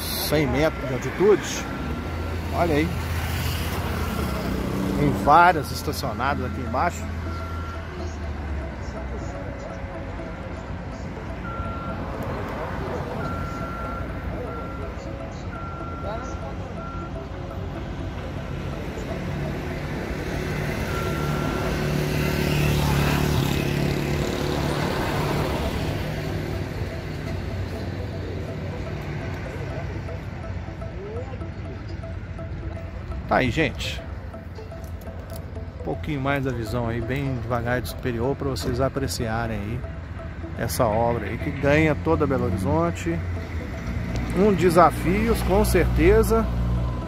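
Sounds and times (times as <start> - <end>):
construction site din: 0.0 - 47.0
vehicle passing: 0.0 - 47.0
electronic warning beeper: 11.4 - 17.8, 20.0 - 23.9.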